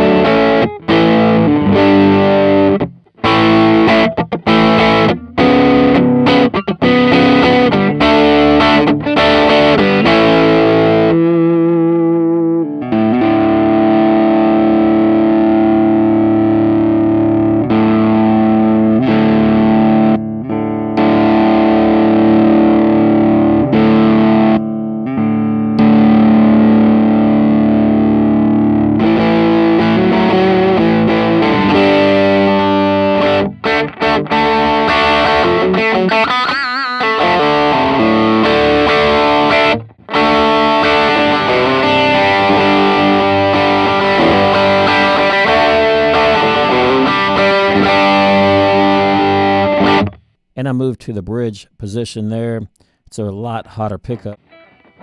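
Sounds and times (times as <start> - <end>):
overdriven electric guitar: 0.0 - 50.4, 54.3 - 55.0.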